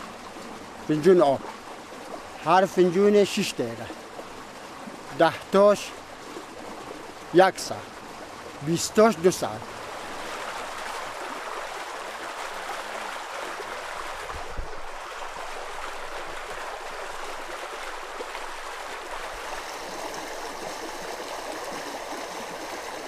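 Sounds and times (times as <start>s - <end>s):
running water flowing: 0.0s - 23.0s.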